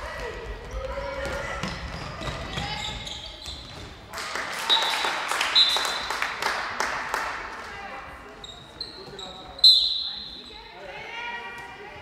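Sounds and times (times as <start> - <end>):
ball bouncing on hall floor: 0.0 - 4.2
shoes squeaking on court: 0.6 - 4.1, 8.3 - 10.7.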